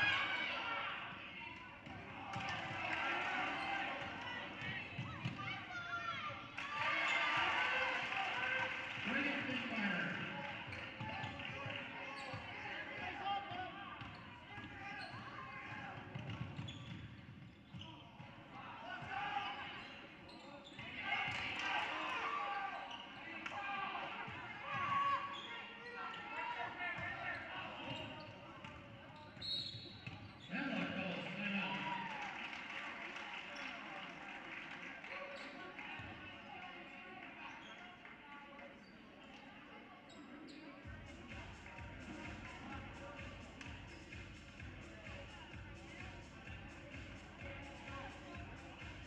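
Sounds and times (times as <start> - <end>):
voices in a gym: 0.0 - 49.0
basketball bouncing on court: 1.8 - 2.8, 4.0 - 5.5, 15.8 - 17.9.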